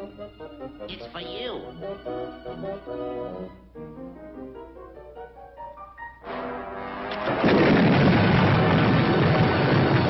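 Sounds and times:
orchestral music: 0.0s - 7.6s
cartoon dynamite explosion: 7.2s - 10.0s.

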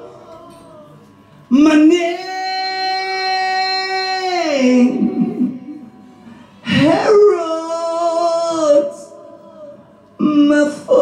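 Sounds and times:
man singing long high note: 0.0s - 11.0s.

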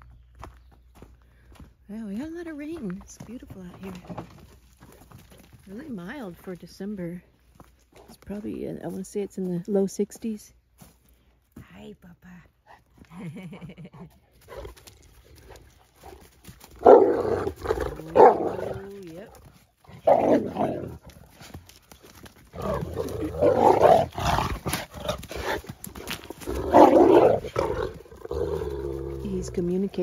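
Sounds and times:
dog growling and snarling: 16.8s - 19.1s, 19.9s - 21.2s, 22.5s - 29.3s.

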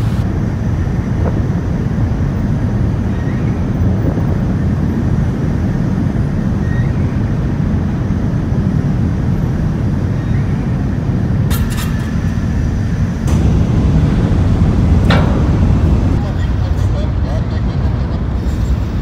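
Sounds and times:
ferry machinery drone: 0.0s - 19.0s.

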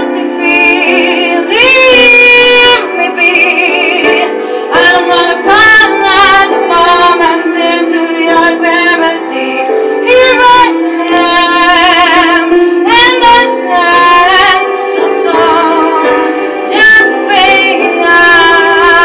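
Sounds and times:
musical accompaniment: 0.0s - 19.0s
woman singing a slow ballad: 0.0s - 19.0s.

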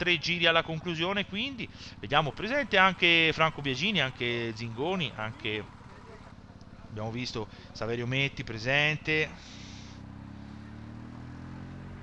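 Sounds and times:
vehicle engine hum: 0.0s - 12.0s.

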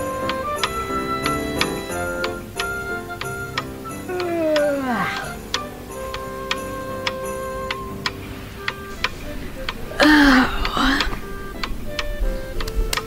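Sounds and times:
clock ticking: 0.0s - 13.0s
falling sliding tone: 0.0s - 13.0s
soft background music: 0.0s - 13.0s.

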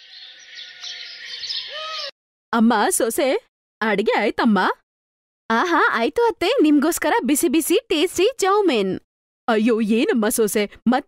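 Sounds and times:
small birds chirping: 0.0s - 2.2s.

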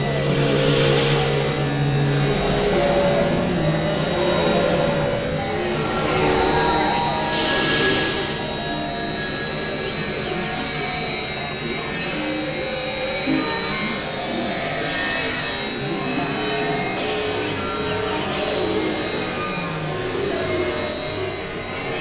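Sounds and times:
synthesizer drone music: 0.0s - 11.2s.

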